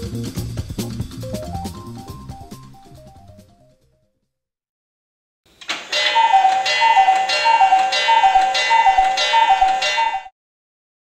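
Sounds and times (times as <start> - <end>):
cuckoo clock calling: 5.6 - 10.3.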